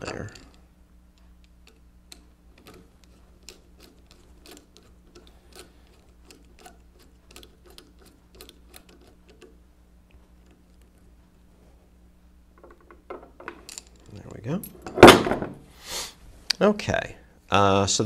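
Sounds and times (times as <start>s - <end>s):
screwdriver turning screw: 1.4s - 9.6s.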